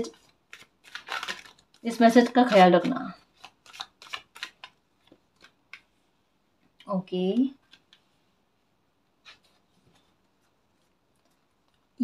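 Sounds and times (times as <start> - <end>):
woman speaking: 0.0 - 0.2, 1.8 - 3.2, 6.8 - 7.6.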